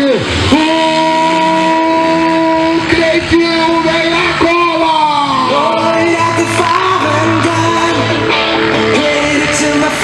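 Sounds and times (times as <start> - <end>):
motocross bike engine revving: 0.0 - 10.0.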